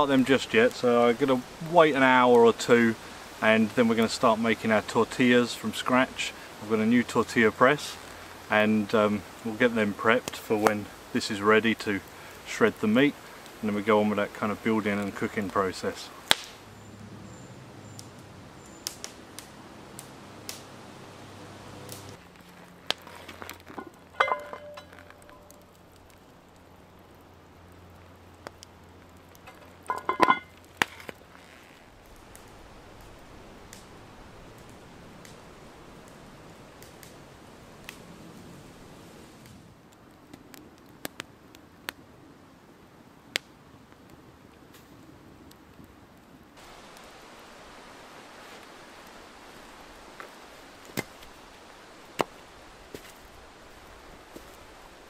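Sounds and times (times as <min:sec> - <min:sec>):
woodland ambience: 0:00.0 - 0:40.2, 0:46.6 - 0:55.0
small clicks and cracks: 0:16.3 - 0:16.6, 0:21.9 - 0:33.9, 0:39.4 - 0:42.0.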